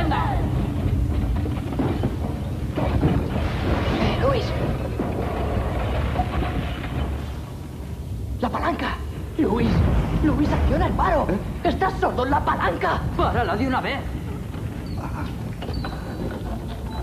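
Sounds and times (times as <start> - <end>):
low rumble: 0.0 - 17.0.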